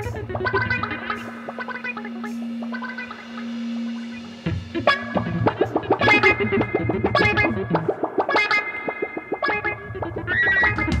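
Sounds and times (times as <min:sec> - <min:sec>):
drums and cymbals: 0:00.0 - 0:07.5, 0:10.6 - 0:11.0
bass guitar: 0:00.0 - 0:08.8, 0:09.4 - 0:11.0
electric guitar: 0:00.0 - 0:11.0.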